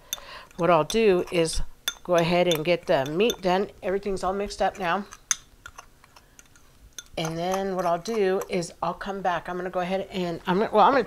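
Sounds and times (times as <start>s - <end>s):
fork tapping ceramic bowl: 0.1s - 1.3s, 1.9s - 3.5s, 6.4s - 8.5s.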